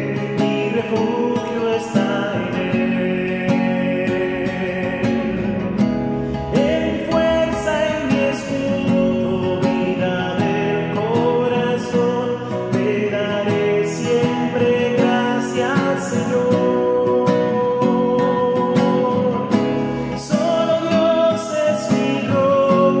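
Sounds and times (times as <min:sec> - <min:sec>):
man singing worship song: 0:00.0 - 0:23.0
strummed acoustic guitar: 0:00.0 - 0:23.0.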